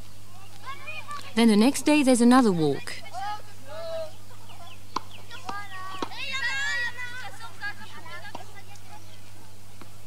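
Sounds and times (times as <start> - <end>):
bird calls and chirps: 3.9 - 6.4, 7.9 - 10.0.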